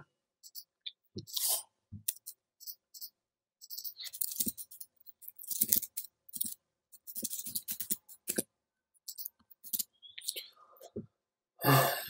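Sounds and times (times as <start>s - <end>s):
keyboard and mouse clicks: 0.4s - 8.4s, 9.0s - 10.5s
person humming breathily: 11.6s - 12.0s.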